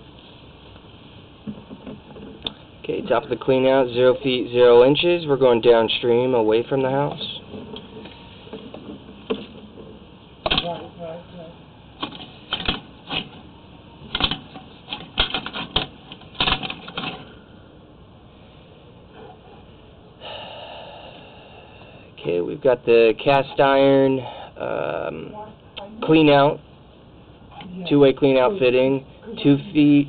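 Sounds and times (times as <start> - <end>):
steady hiss: 0.0 - 15.6, 16.4 - 25.3.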